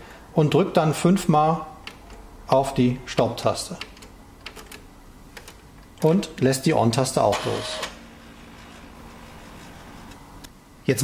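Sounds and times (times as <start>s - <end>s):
inkjet printer mechanism humming: 7.3s - 10.5s.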